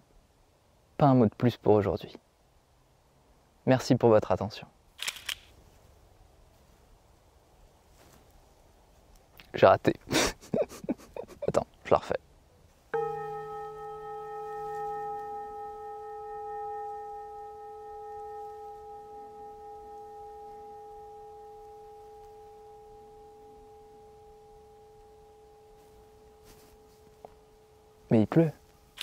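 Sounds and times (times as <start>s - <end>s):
metal singing bowl ringing: 13.0s - 28.7s.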